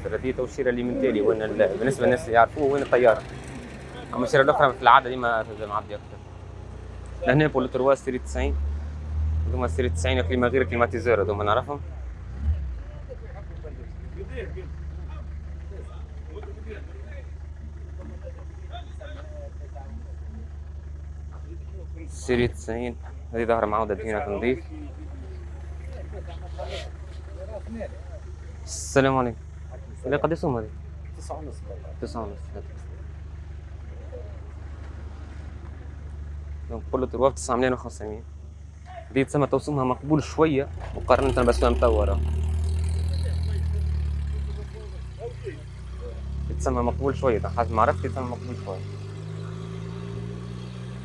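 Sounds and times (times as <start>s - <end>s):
man speaking: 0.0s - 3.2s, 4.0s - 6.1s, 7.2s - 8.6s, 22.0s - 24.8s, 38.9s - 42.2s, 46.5s - 48.8s
car engine idling: 0.0s - 51.0s
murmur of voices: 23.1s - 28.7s.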